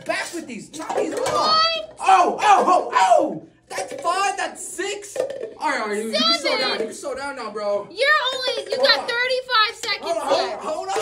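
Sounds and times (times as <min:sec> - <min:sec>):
excited voices shouting: 0:01.4 - 0:03.4, 0:06.0 - 0:06.8.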